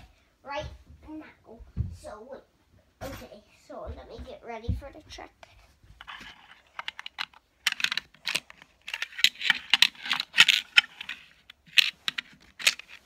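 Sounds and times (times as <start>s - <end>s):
hard plastic clicking: 6.7s - 13.0s.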